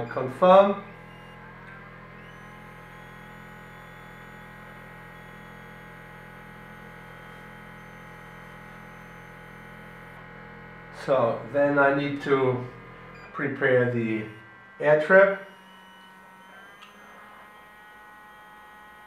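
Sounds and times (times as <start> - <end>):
electrical hum with rising whine: 0.0 - 19.0.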